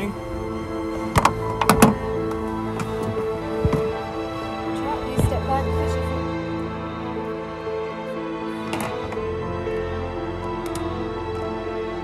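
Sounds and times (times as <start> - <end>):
background music of held notes: 0.0 - 12.0.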